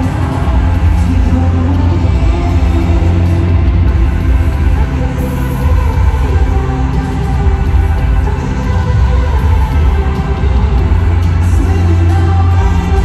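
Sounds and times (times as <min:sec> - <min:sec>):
live band playing loudly: 0:00.0 - 0:13.0.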